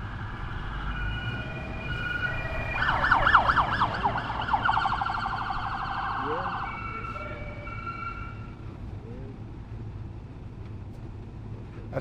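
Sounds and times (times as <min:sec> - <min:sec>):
police siren: 0:00.0 - 0:08.7
low rumble of vehicles: 0:00.0 - 0:12.0.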